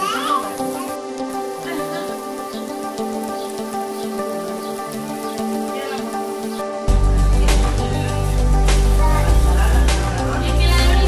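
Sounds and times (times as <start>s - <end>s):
background music: 0.0s - 11.0s
meat sizzling on a grill: 0.0s - 11.0s.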